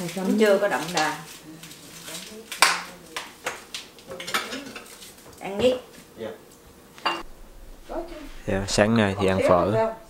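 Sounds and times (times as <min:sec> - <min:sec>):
crockery clinking: 0:04.1 - 0:05.0, 0:07.0 - 0:07.3.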